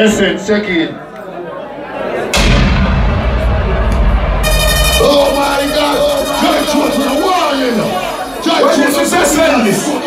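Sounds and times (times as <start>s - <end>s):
loud bass-heavy music: 2.4s - 9.8s
high buzzy tone: 4.4s - 9.5s.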